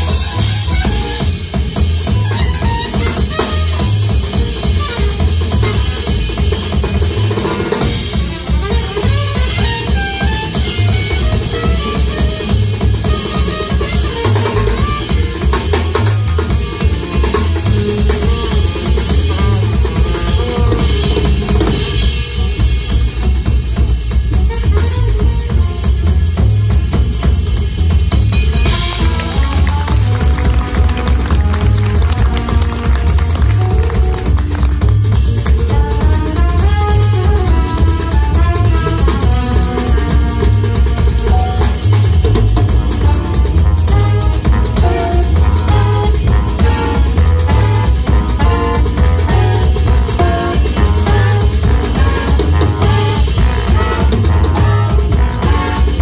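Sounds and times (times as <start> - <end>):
double bass line: 0.0 - 56.0
drum kit: 0.0 - 56.0
jazz big band playing: 0.0 - 56.0
piano: 0.0 - 56.0.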